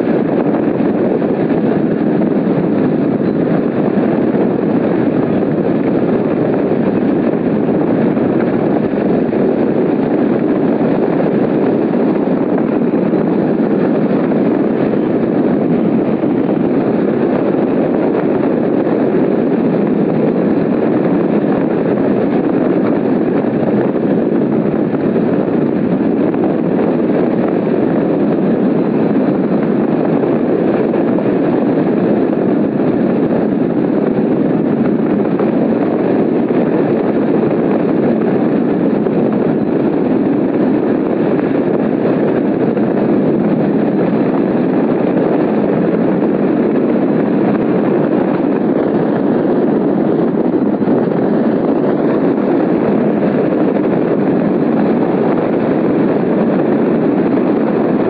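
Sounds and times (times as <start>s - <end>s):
wind rushing over microphone: 0.0s - 58.0s.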